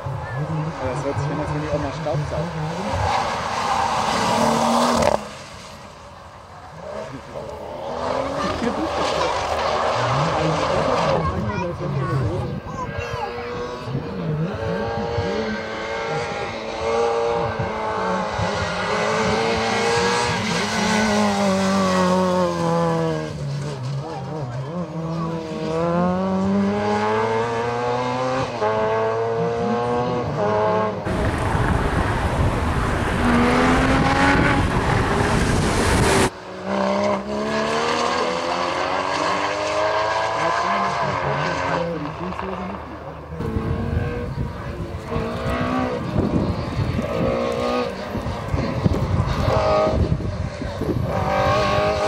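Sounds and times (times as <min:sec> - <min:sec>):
racing car engines revving: 0:00.0 - 0:52.0
loud even rushing noise: 0:31.0 - 0:36.4.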